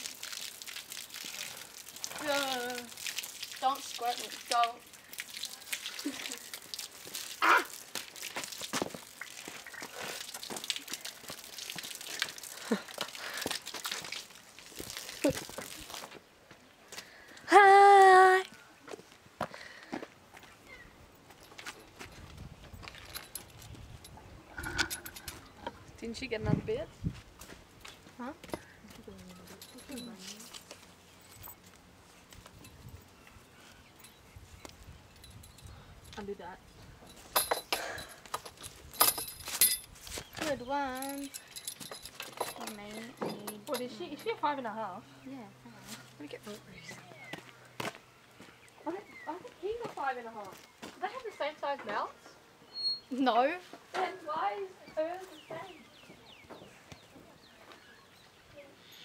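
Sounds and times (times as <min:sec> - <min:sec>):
girl laughing: 0:05.9 - 0:06.5, 0:15.1 - 0:15.9
metal buckles clinking: 0:21.3 - 0:25.7, 0:29.3 - 0:31.7, 0:35.1 - 0:36.4, 0:37.0 - 0:44.5.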